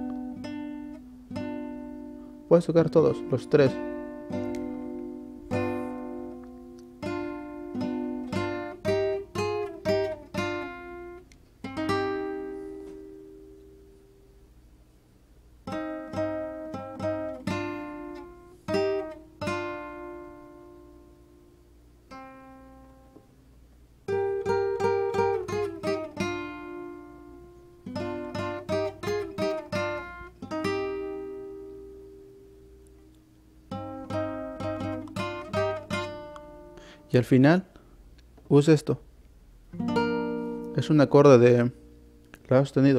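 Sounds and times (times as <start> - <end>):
classical guitar playing: 0.0 - 14.3, 15.6 - 23.3, 24.0 - 37.1, 39.7 - 42.9.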